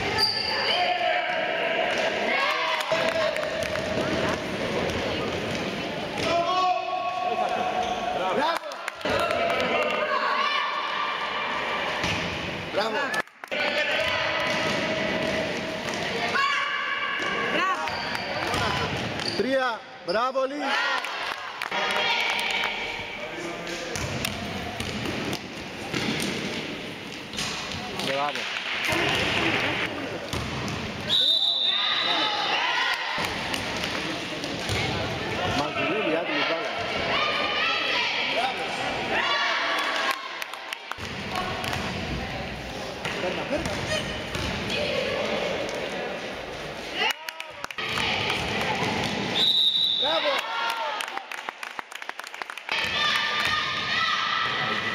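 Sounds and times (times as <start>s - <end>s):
high-pitched shoe squeaks: 0.1s - 0.7s
spectators' voices: 20.4s - 51.2s
basketball bouncing on court: 24.0s - 26.5s, 30.3s - 31.0s, 41.0s - 42.1s, 43.6s - 44.7s
people shouting: 52.7s - 54.9s.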